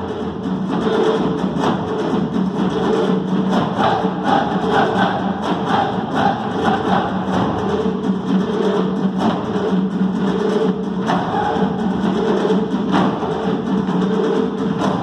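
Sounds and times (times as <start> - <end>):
hand drums beating fast: 0.0 - 15.0.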